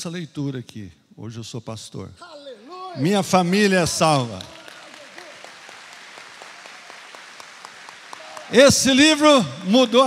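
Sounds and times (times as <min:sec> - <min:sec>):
audience applauding: 0:03.8 - 0:10.0.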